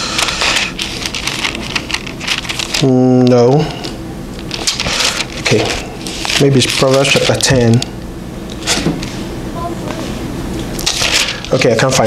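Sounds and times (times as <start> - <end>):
thin pages rustling: 0.2 - 2.9, 4.5 - 7.5.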